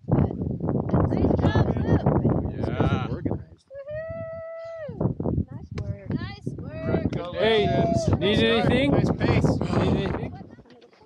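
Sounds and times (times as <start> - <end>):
person cheering call: 6.8 - 8.6
short shouts: 6.9 - 8.6.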